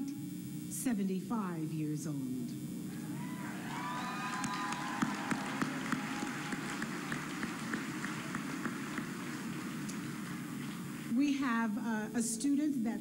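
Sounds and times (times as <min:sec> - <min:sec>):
crowd cheering: 0:02.9 - 0:11.2
audience applause: 0:03.0 - 0:11.2.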